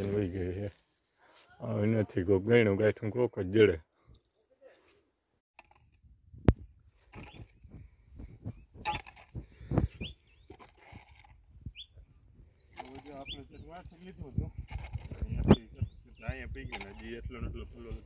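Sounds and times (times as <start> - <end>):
hoes chopping and scraping soil: 5.6 - 11.9
bird chirps: 6.0 - 17.9.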